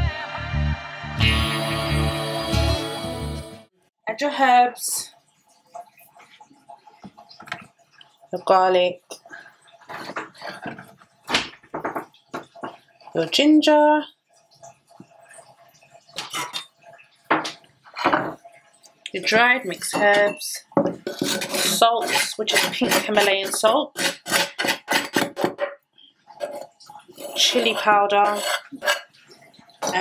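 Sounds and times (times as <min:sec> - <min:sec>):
hands scraping a wooden board: 0:21.0 - 0:25.6, 0:26.4 - 0:29.1.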